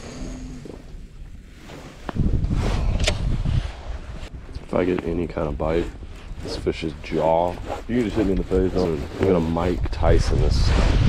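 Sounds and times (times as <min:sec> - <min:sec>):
wind buffeting microphone: 0:02.0 - 0:11.0.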